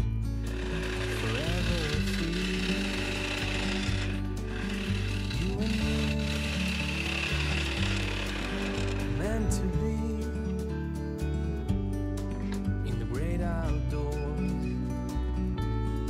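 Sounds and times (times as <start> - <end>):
background music: 0.0 - 16.0
gouge shaving wood on lathe: 0.4 - 9.7.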